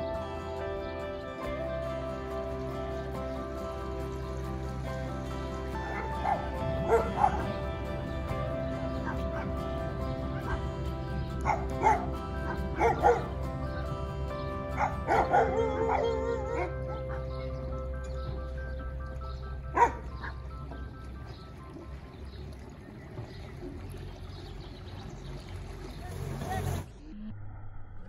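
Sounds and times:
background music with held tones: 0:00.0 - 0:25.4
dog barking and yipping: 0:05.8 - 0:07.7, 0:08.9 - 0:09.6, 0:11.4 - 0:13.4, 0:14.7 - 0:17.3, 0:19.7 - 0:20.4.

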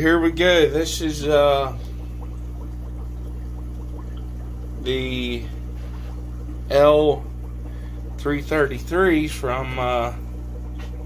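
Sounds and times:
steady low hum: 0:00.0 - 0:11.0
water trickling: 0:00.0 - 0:11.0.

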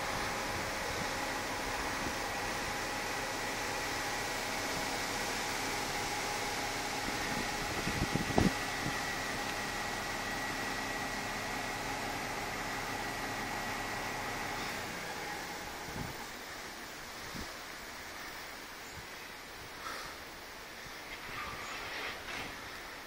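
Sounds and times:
steady hiss: 0:12.3 - 0:23.0.

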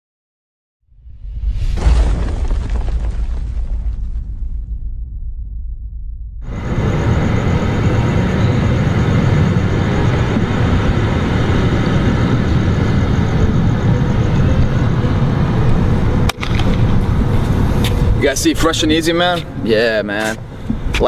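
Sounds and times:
loud rushing noise with rumble: 0:00.9 - 0:19.0.

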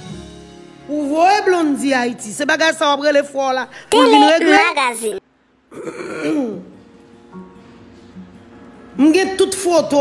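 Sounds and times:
faint music: 0:00.6 - 0:10.0
person talking: 0:03.8 - 0:05.2.

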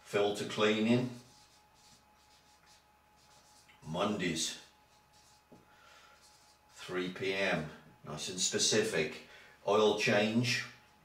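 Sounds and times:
marker scratching on paper: 0:01.0 - 0:03.8, 0:04.9 - 0:05.6, 0:06.2 - 0:06.9.

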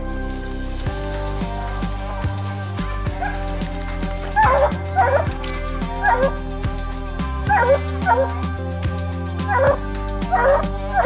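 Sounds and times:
background music: 0:00.0 - 0:11.0
dog barking: 0:04.4 - 0:05.3, 0:06.0 - 0:06.4, 0:07.5 - 0:08.4, 0:09.5 - 0:11.0.

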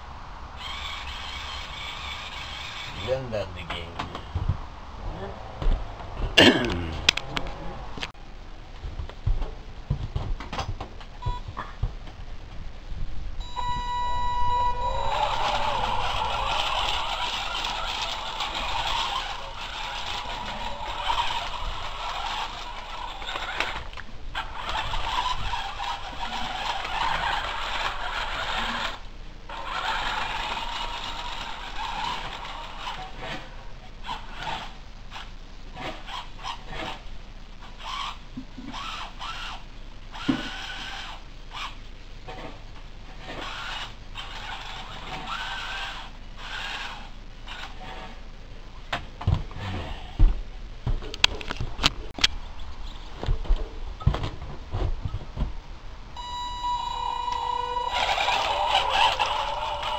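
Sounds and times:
high motor whine: 0:13.3 - 0:28.0, 0:56.2 - 0:59.9.

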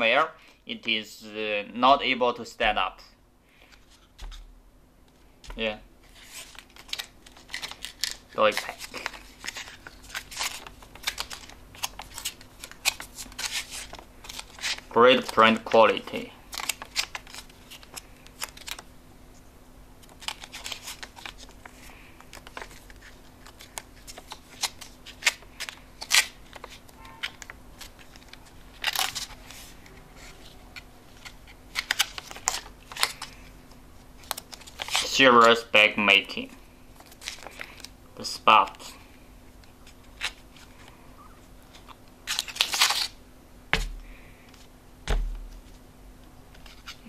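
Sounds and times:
foil pouch crinkling: 0:06.1 - 0:18.8, 0:34.2 - 0:35.6, 0:41.6 - 0:43.2.

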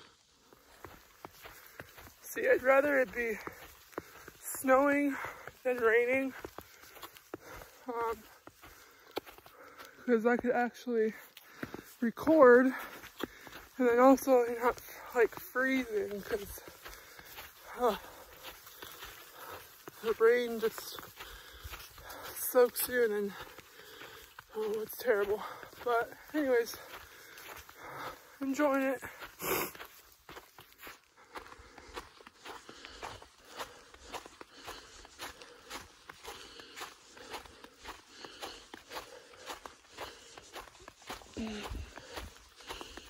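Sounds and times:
footsteps on snow: 0:00.0 - 0:43.0.

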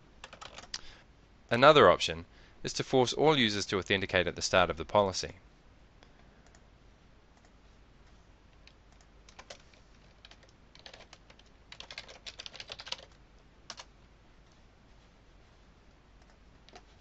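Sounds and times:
faint typing on a keyboard: 0:00.2 - 0:01.0, 0:06.0 - 0:06.7, 0:07.3 - 0:15.1, 0:15.8 - 0:17.0.

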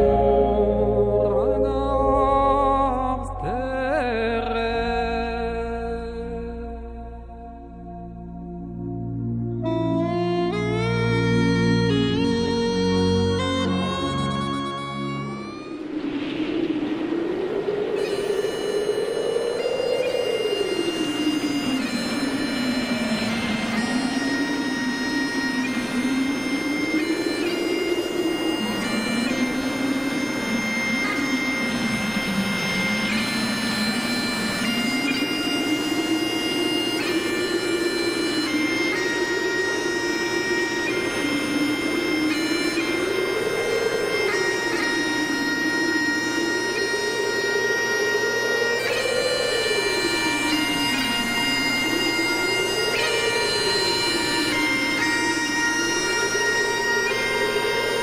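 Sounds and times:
bagpipe music: 0:00.0 - 0:01.3, 0:08.6 - 0:16.0, 0:18.0 - 0:58.0.

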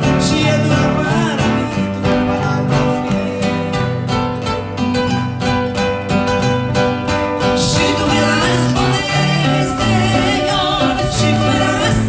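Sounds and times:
man and woman singing: 0:00.0 - 0:04.3, 0:07.4 - 0:12.0
acoustic guitars: 0:00.0 - 0:12.0.

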